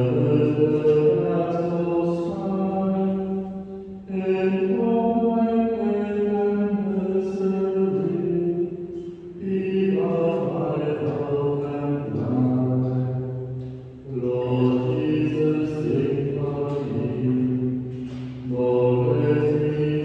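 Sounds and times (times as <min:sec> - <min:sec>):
person singing a hymn: 0:00.0 - 0:20.0.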